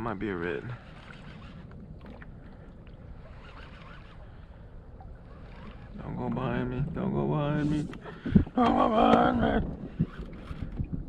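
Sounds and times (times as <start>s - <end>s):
water noise around kayak: 0.0s - 11.0s
wind noise: 5.3s - 11.0s.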